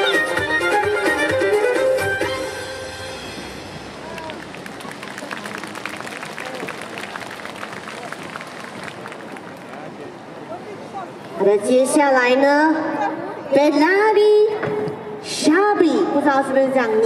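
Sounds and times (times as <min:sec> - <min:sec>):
crowd chatter: 0:03.2 - 0:17.0
audience clapping: 0:04.0 - 0:10.1.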